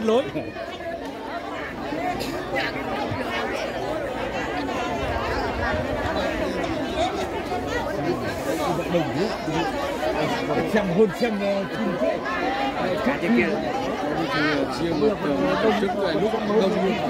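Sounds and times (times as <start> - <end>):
crowd chattering: 0.0 - 17.0.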